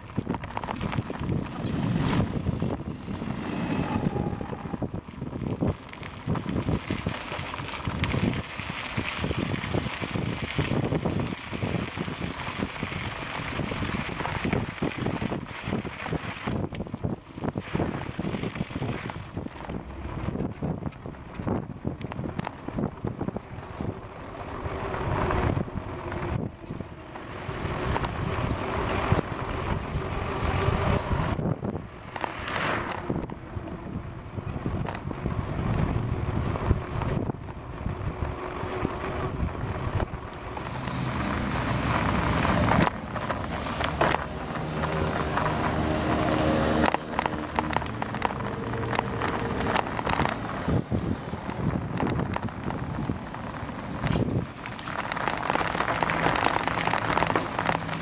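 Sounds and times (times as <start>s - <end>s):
low engine hum: 0.0s - 58.0s
road noise: 0.0s - 58.0s
wind buffeting microphone: 0.0s - 58.0s
small knocks and rattles: 46.7s - 58.0s.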